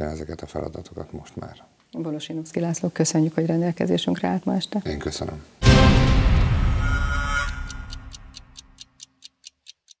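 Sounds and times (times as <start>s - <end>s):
theme music: 5.6s - 8.8s
clock-like ticking: 6.9s - 10.0s.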